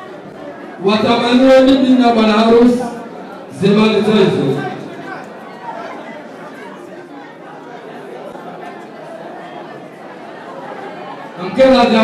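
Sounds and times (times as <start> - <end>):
murmur of many voices: 0.0 - 12.0.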